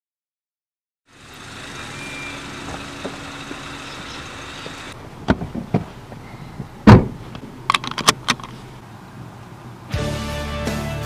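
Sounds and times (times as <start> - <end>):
street traffic hum: 1.1 - 11.0
clicks and knocks inside car: 4.6 - 8.4.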